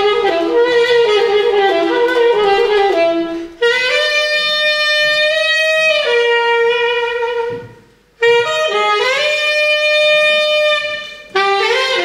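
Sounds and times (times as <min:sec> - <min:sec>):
tenor saxophone playing: 0:00.0 - 0:12.0.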